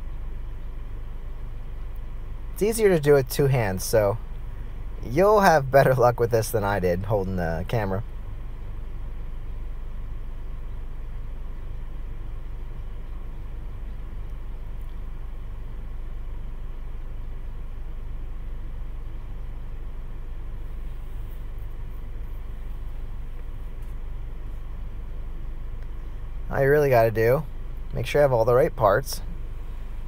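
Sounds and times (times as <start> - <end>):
faint steady tones: 0.0 - 30.0
low hum: 0.0 - 30.0.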